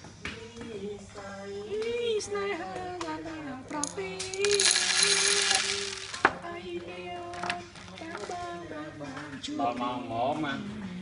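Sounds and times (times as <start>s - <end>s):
small hard objects jingling: 4.2s - 6.3s.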